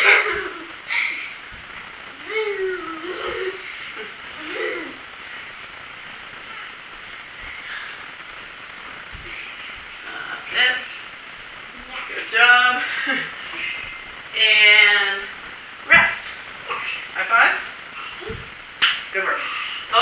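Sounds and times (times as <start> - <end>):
faint thuds of feet stepping: 1.4 - 2.0, 5.5 - 10.1, 15.2 - 16.4, 18.2 - 19.0.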